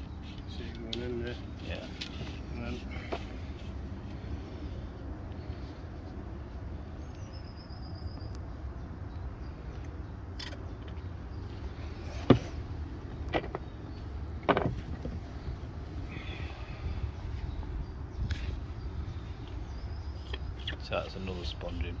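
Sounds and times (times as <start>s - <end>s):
steady low rumble: 0.0s - 22.0s.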